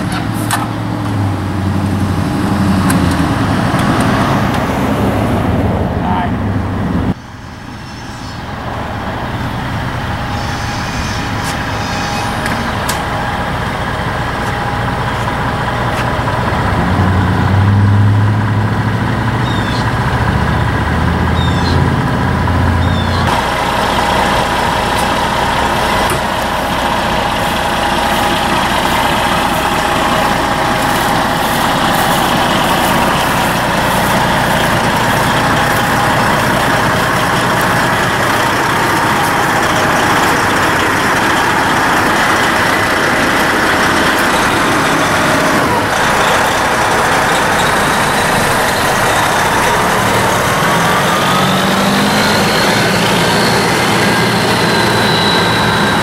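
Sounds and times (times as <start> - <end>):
deep loud rumble: 0.0 - 56.0
diesel engine idling: 0.0 - 56.0.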